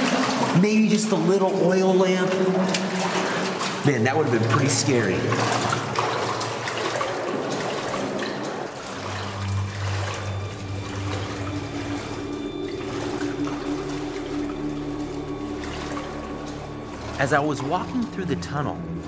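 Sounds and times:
low steady tones: 0:00.0 - 0:19.0
person wading: 0:00.0 - 0:19.0
water running and splashing: 0:00.0 - 0:19.0.

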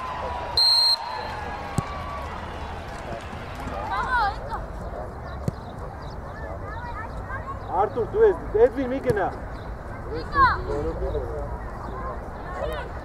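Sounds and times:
voices: 0:00.0 - 0:13.0
referee's whistle blast: 0:00.6 - 0:01.3.

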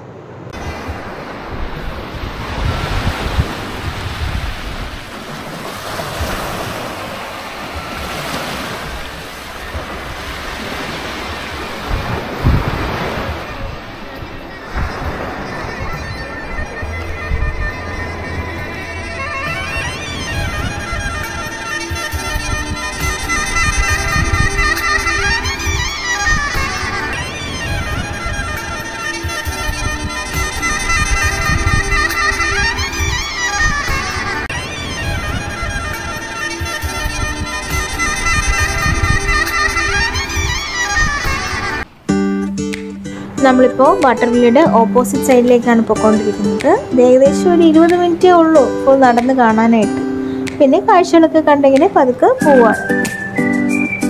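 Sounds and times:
wind gusting over microphone: 0:00.0 - 0:42.2
sea surf washing on beach: 0:00.0 - 0:53.2
melody over low drone: 0:13.3 - 0:53.5.

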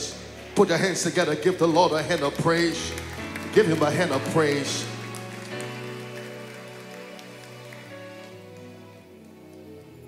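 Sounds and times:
congregation applauding: 0:00.0 - 0:10.0
soft instrumental music: 0:00.0 - 0:10.0.

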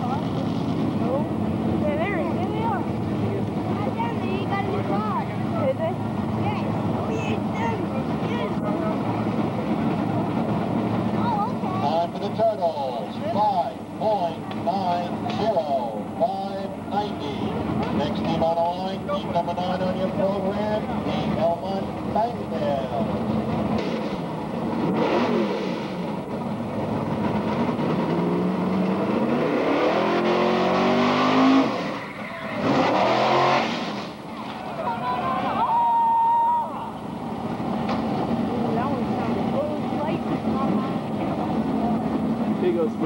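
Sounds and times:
truck engine accelerating: 0:00.0 - 0:35.7, 0:36.7 - 0:43.0
crowd shouting and cheering: 0:32.0 - 0:32.9, 0:34.3 - 0:37.2.

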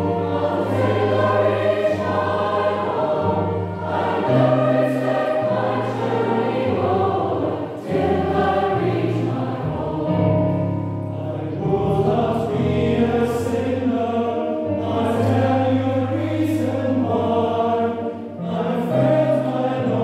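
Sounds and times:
choir singing gospel song: 0:00.0 - 0:20.0.

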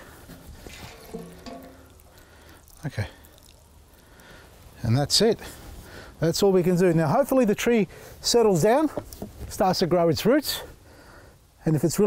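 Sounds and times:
water pouring onto soil: 0:00.0 - 0:06.8.

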